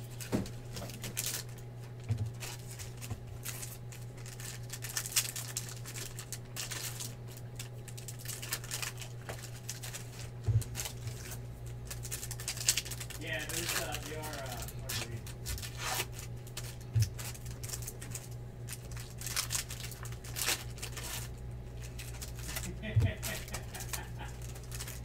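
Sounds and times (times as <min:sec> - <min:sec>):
foil wrappers tearing and crinkling: 0:00.0 - 0:25.0.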